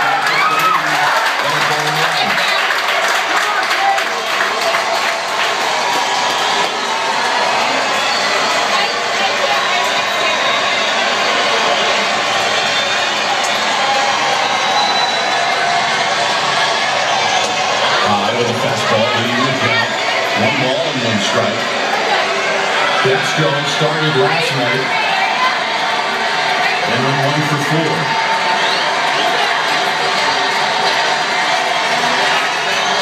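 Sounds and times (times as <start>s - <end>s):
crowd cheering: 0.0s - 33.0s
crowd clapping: 0.0s - 33.0s.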